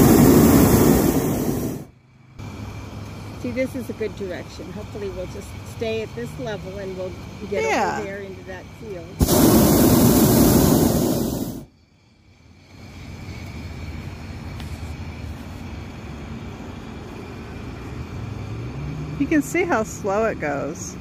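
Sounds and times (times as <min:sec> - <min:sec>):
propane burner blast: 0:00.0 - 0:02.6, 0:03.2 - 0:17.5.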